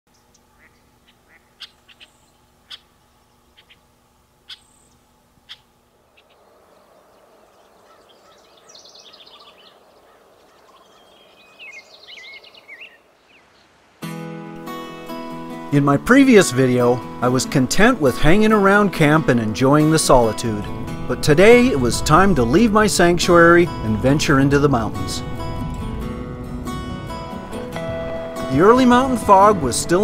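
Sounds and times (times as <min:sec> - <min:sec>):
songbirds chirping and trilling: 0:00.1 - 0:14.0.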